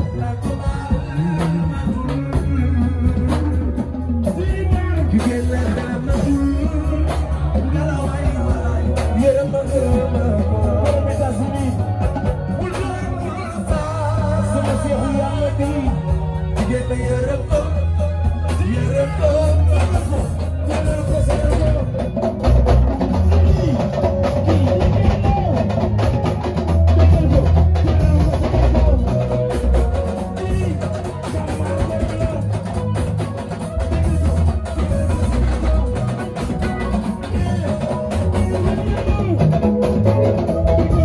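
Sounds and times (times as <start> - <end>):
dense drumming: 0.0 - 41.0
heavy bass line: 0.0 - 41.0
live band music: 0.0 - 41.0.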